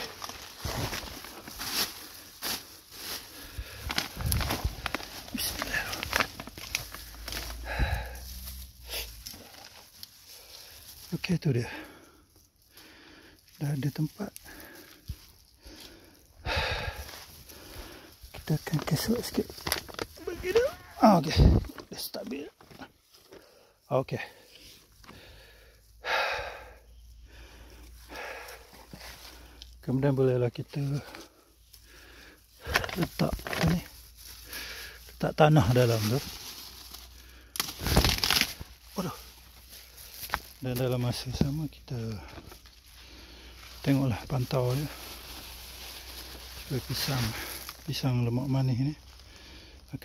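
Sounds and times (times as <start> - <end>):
soil and plastic bag crinkling: 0.0 - 25.7, 27.3 - 50.0
person breathing out: 3.2 - 6.3, 6.9 - 9.2, 14.5 - 18.2, 25.1 - 29.6.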